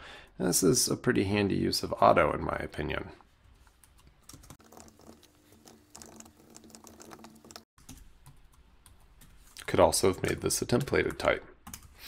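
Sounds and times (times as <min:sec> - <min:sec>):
faint keyboard typing: 0:03.6 - 0:12.0.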